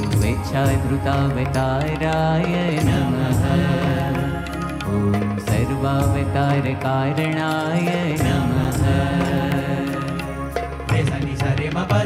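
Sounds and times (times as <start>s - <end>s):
tabla: 0.0s - 12.0s.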